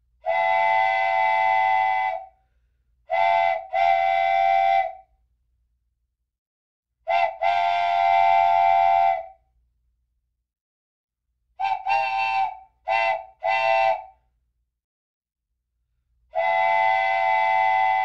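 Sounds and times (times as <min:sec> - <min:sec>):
train whistle blowing: 0:00.2 - 0:02.4, 0:03.1 - 0:05.1, 0:07.1 - 0:09.4, 0:11.6 - 0:14.2, 0:16.3 - 0:18.0.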